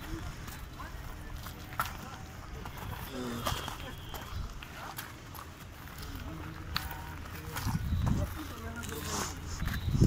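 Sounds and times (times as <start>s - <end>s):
footsteps on rock: 0.0s - 10.0s.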